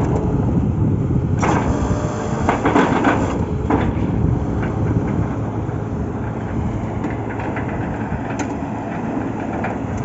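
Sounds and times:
drilling rig engine drone: 0.0 - 10.0.

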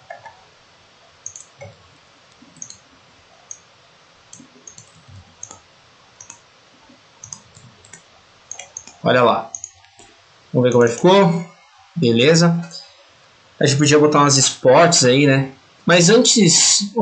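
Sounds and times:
computer mouse clicking: 0.0 - 0.4, 1.2 - 2.9, 3.5 - 3.7, 4.3 - 6.5, 7.2 - 10.1
faint room hiss: 0.0 - 17.0.

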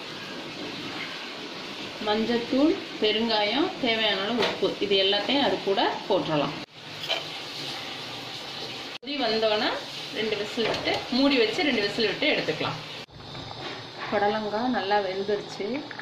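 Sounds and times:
woman talking: 2.0 - 6.6, 9.0 - 12.8, 14.1 - 16.0.

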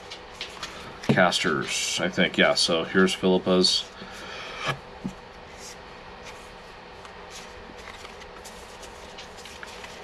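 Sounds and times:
cards rustling: 5.6 - 10.0.

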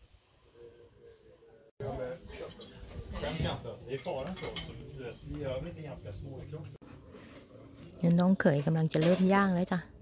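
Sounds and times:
dishes and cutlery clinking: 2.3 - 5.7, 8.5 - 9.4
people talking: 8.0 - 9.8.

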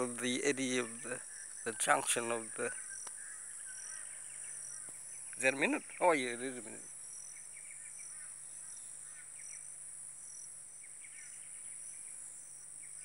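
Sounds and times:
bird chirps: 0.0 - 13.0
high-pitched insect chorus: 0.0 - 13.0.

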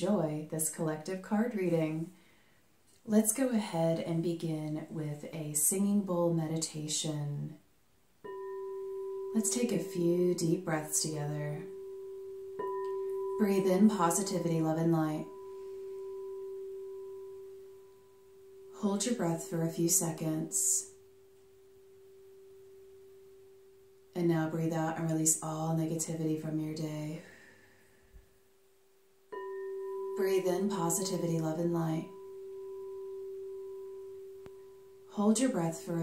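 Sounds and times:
singing bowl ringing: 8.2 - 19.0, 20.9 - 24.1, 29.3 - 35.2.

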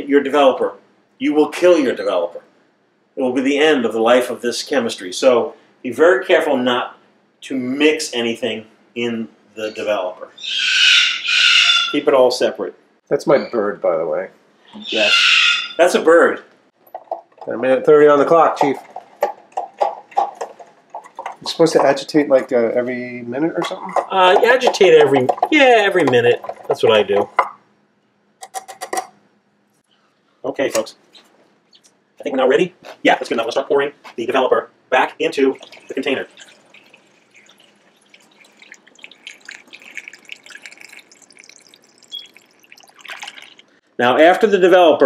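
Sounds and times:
bird clucking calls: 10.4 - 12.0
liquid trickling and splashing: 24.4 - 27.3, 35.4 - 43.8.

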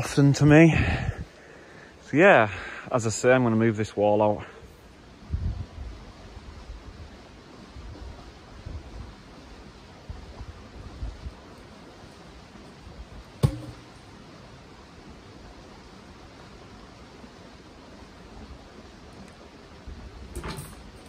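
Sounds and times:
faint low thumps of logs: 13.4 - 14.1
log dropping with wooden knock: 13.4 - 14.1.

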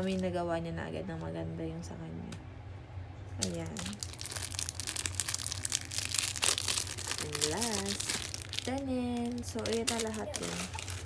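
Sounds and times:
plastic packaging crinkling: 0.0 - 0.4, 3.4 - 11.0.

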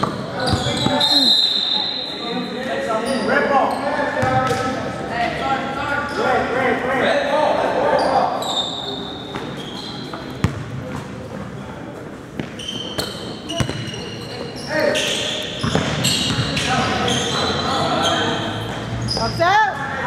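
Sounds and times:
sneaker squeaks: 0.0 - 4.7, 7.9 - 11.6, 12.3 - 20.0
basketball bouncing on hardwood: 10.4 - 10.7.

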